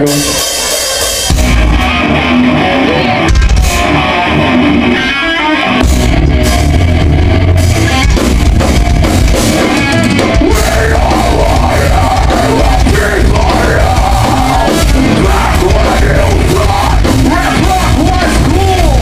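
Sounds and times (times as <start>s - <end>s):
distorted electric guitars: 0.0s - 19.0s
drum kit: 0.0s - 19.0s.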